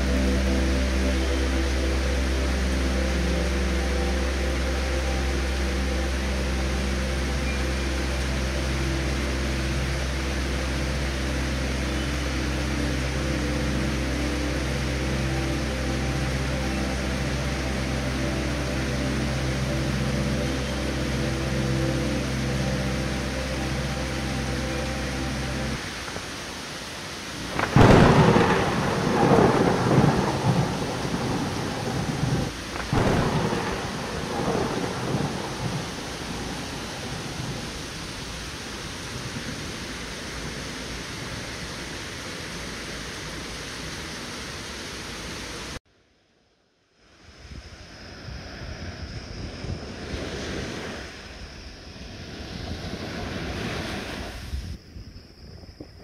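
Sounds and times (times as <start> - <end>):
heavy rain on foliage: 0.0 - 45.8
thunder rumbling: 27.4 - 41.7.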